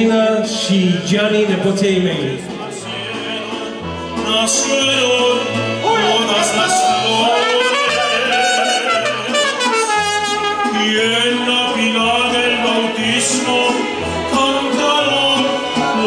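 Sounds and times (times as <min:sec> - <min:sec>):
strummed guitars: 0:00.0 - 0:16.0
man singing into a microphone: 0:02.5 - 0:16.0
trumpet melody: 0:04.2 - 0:11.9.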